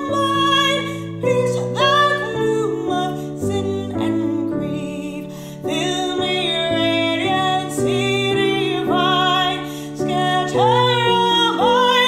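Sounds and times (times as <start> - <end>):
piano accompaniment: 0.0 - 12.0
woman singing a hymn: 0.0 - 12.0.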